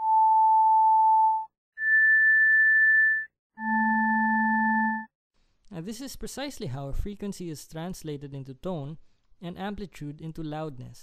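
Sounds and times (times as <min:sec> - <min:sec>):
electronic test tones: 0:01.3 - 0:05.1.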